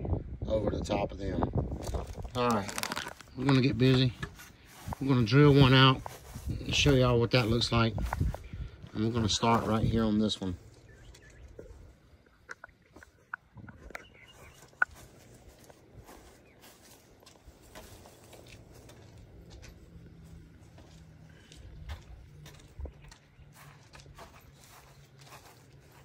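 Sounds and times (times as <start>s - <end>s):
faint footsteps: 1.7s - 26.0s.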